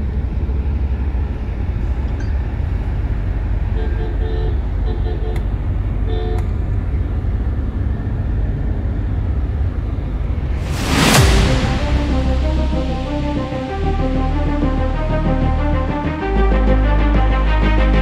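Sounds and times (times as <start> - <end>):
road and engine rumble: 0.0 - 18.0.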